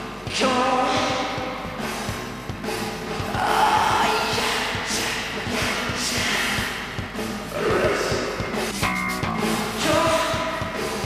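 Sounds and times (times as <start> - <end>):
drum beat: 0.0 - 11.0
electric guitar: 0.0 - 11.0
person singing: 0.2 - 11.0.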